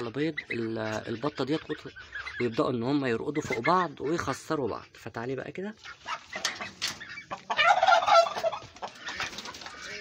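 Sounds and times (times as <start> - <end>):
duck squawking harshly: 5.8 - 10.0.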